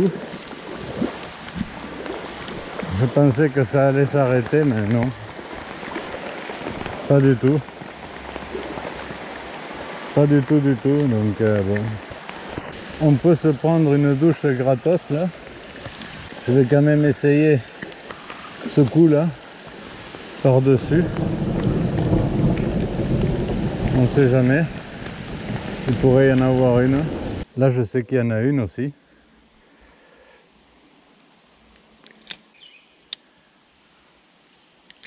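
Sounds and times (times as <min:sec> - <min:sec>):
heavy rain on stream: 0:00.0 - 0:27.5
wind buffeting microphone: 0:20.7 - 0:27.4.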